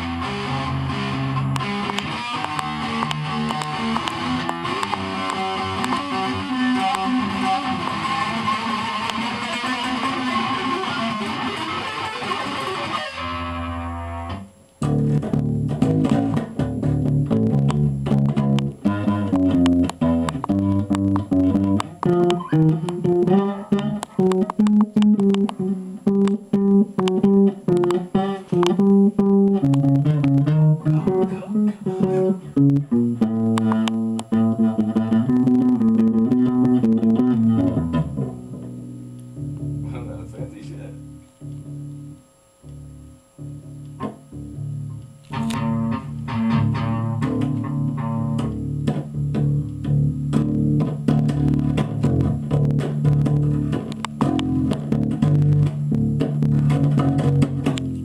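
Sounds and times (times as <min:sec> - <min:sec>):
heavy electric guitar riff: 0:00.0 - 0:58.0.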